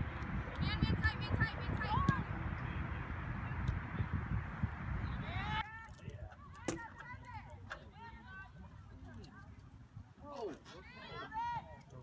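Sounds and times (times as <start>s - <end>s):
low wind rumble: 0.0s - 8.8s.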